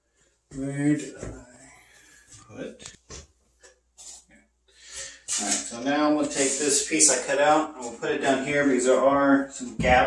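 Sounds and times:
knocks and shuffles: 0.2s - 1.5s
man speaking: 0.5s - 1.8s, 2.5s - 2.9s, 5.3s - 10.0s.

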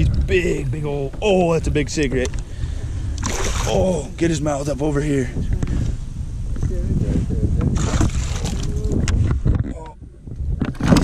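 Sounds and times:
wind rumbling on microphone: 0.0s - 11.0s
fish thrashing splash in water: 3.2s - 3.9s, 7.8s - 8.7s.

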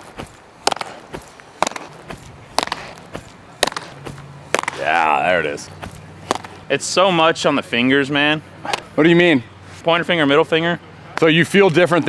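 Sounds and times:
baseball slapping into glove: 0.1s - 4.9s, 5.7s - 6.7s.

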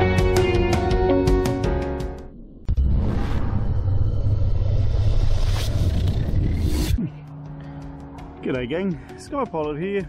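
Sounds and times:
rising whooshes: 2.2s - 7.0s
deep loud rumble: 2.3s - 7.0s.

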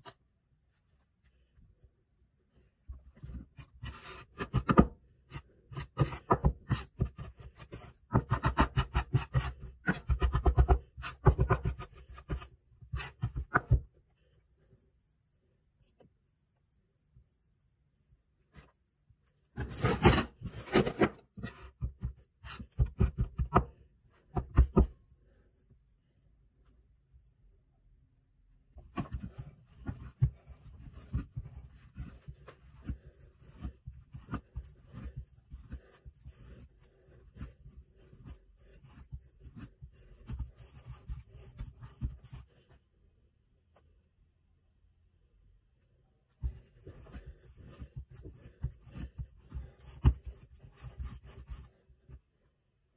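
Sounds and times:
hands rubbing dough: 2.9s - 19.9s, 28.7s - 42.8s, 46.4s - 52.3s
scraper chopping dough on countertop: 3.9s - 13.8s.

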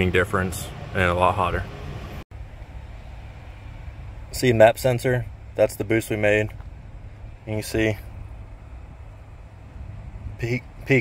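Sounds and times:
low background rumble: 0.0s - 11.0s.

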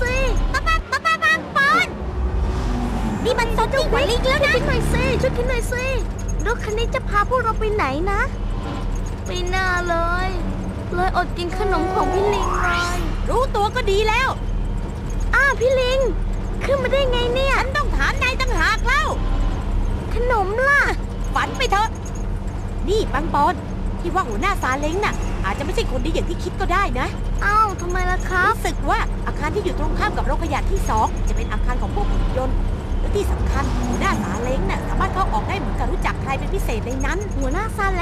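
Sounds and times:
high-pitched cartoon voice speaking: 0.0s - 2.0s
vehicle engine hum: 0.0s - 38.0s.

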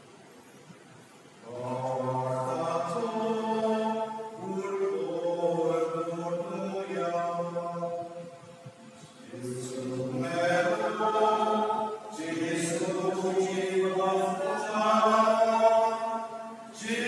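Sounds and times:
man chanting: 1.5s - 8.2s, 9.2s - 17.0s.

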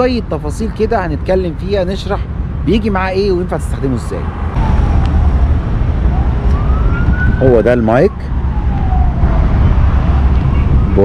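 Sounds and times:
low rumble of street traffic: 0.0s - 11.0s
distant siren wailing: 4.4s - 10.9s.

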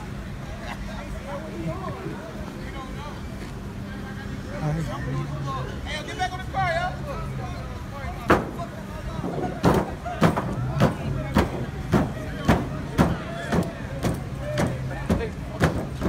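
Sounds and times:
heavy thumps on car sheet metal: 8.3s - 16.0s.

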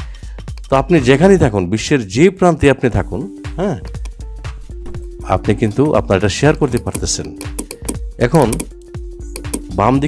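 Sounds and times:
background music: 0.0s - 10.0s
person speaking: 2.5s - 8.8s
computer keyboard typing: 6.8s - 8.7s.

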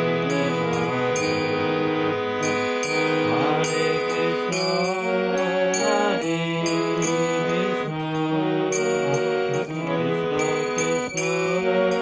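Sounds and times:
harmonium slow melody: 0.0s - 12.0s.

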